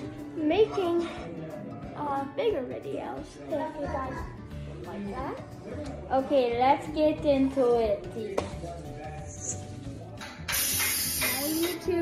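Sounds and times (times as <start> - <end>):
background music: 0.0 - 12.0
aerosol spray hissing: 10.5 - 11.8.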